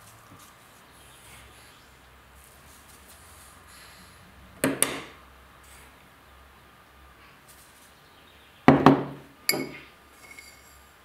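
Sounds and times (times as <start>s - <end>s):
short ring: 9.5s - 10.9s.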